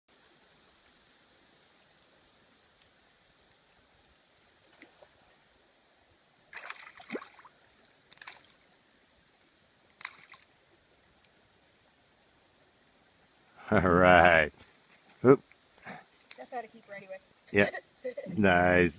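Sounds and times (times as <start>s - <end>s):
water splashing in a creek: 0.1s - 13.4s.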